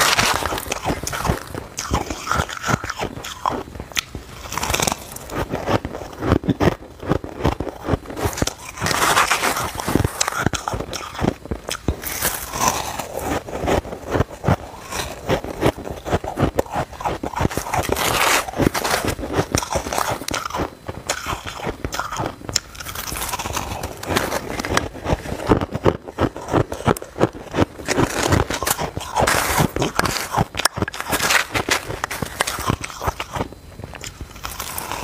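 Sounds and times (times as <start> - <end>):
crunching and chewing frost: 0.0 - 35.0.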